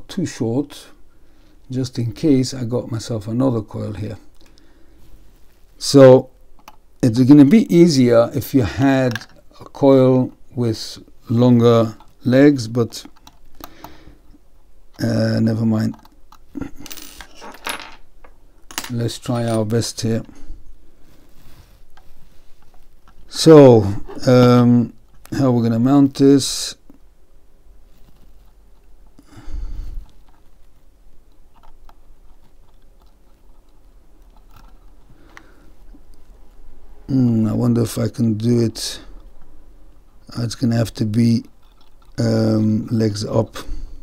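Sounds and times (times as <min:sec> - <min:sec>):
fingers handling wire and metal: 0:11.3 - 0:17.6, 0:30.0 - 0:36.7, 0:41.2 - 0:42.5
small metal parts clinking on wood: 0:16.8 - 0:18.0, 0:18.7 - 0:19.8.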